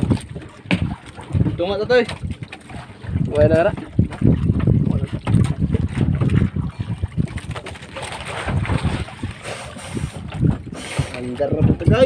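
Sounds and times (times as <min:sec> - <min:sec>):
sea water moving around boat: 0:00.0 - 0:12.0
wind buffeting microphone: 0:00.0 - 0:12.0.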